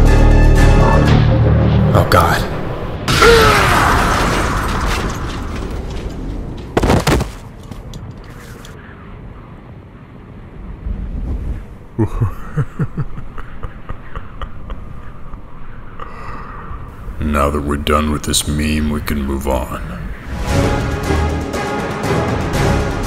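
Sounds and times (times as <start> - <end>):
heavy explosion: 2.9 - 6.4.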